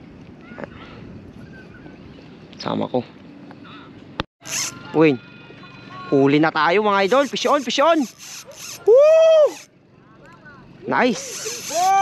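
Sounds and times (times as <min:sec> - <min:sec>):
man shouting excitedly: 0:11.6 - 0:12.0.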